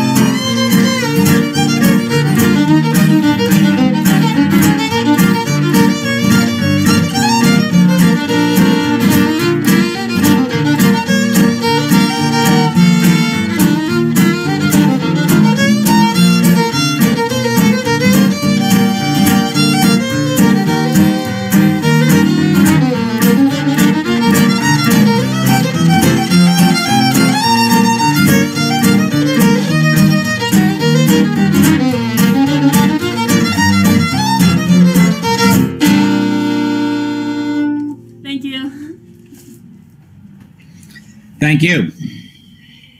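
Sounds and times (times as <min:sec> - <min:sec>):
lively fiddle tune: 0:00.0 - 0:38.0
strummed acoustic guitar: 0:00.0 - 0:39.7.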